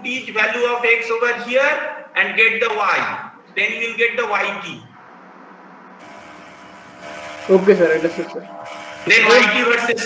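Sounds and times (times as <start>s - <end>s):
open microphone hiss: 0.0s - 10.0s.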